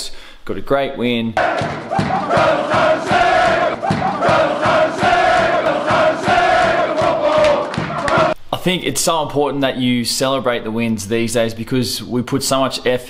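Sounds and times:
men chanting and shouting: 1.4s - 8.4s.

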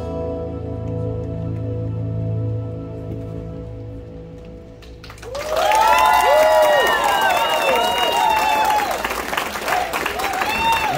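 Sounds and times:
live hula music: 0.0s - 10.9s
audience applause: 5.0s - 10.9s
high whooping cheers: 5.2s - 10.9s.

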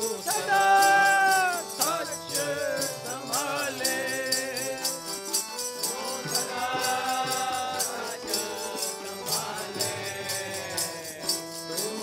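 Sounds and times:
chanting voices: 0.0s - 5.2s, 5.8s - 12.0s
harmonium holding notes: 0.0s - 12.0s
jingling percussion: 0.0s - 12.0s.

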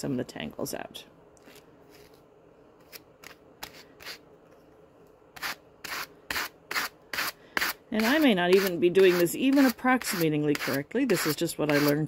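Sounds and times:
hand carders brushing fur: 5.4s - 12.0s.

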